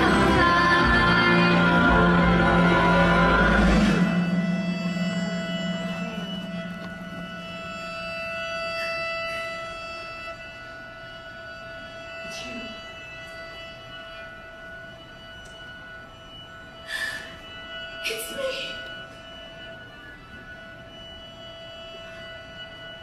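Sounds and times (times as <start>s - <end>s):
band holding sustained chord: 0.0s - 23.0s.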